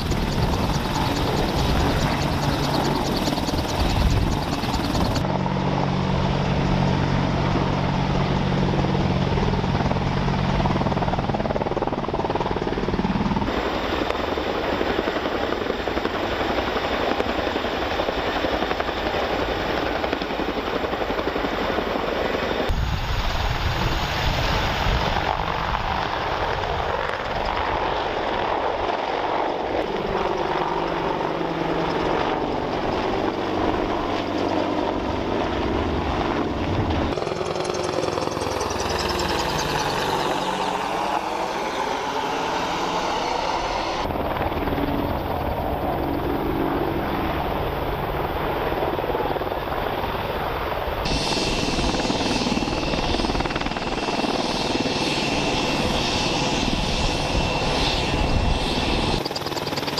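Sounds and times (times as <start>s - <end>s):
helicopter engines and rotors: 0.0s - 59.9s.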